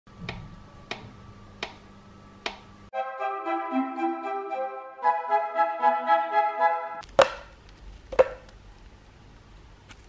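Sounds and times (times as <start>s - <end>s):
faint steady hum: 7.0s - 10.0s.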